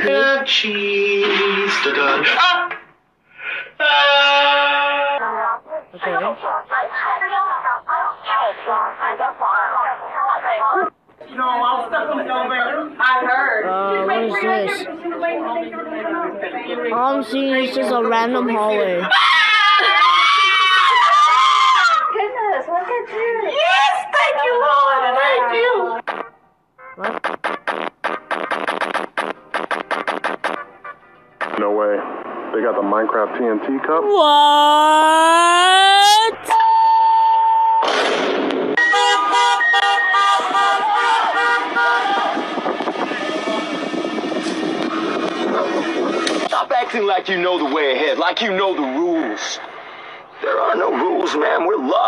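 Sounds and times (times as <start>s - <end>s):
street noise: 0.0s - 52.0s
woman screaming: 19.1s - 22.2s, 34.1s - 36.6s
vehicle horn honking: 38.8s - 42.4s.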